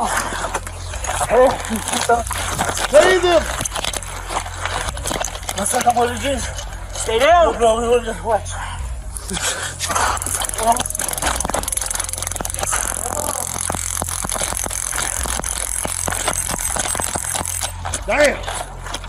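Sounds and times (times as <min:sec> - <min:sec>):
voices: 0:00.0 - 0:14.2
background music: 0:00.0 - 0:19.0.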